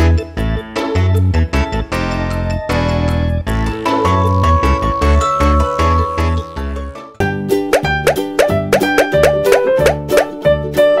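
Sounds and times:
bouncy children's music: 0.0 - 11.0.

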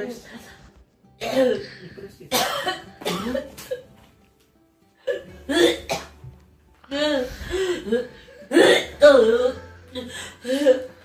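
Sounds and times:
background music: 0.0 - 11.0
woman sobbing: 6.9 - 11.0.

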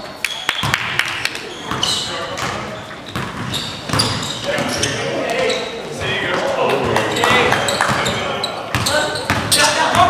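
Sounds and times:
basketball bouncing on floor: 0.6 - 4.7.

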